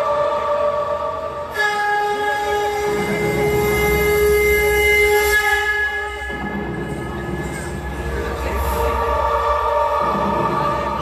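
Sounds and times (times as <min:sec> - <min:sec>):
long horn-like notes: 0:00.0 - 0:11.0.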